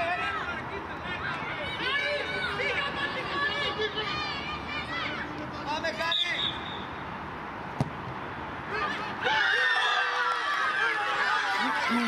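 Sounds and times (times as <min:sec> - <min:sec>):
young voices shouting: 0:01.2 - 0:05.4, 0:08.7 - 0:12.0
football being kicked: 0:07.8 - 0:08.0.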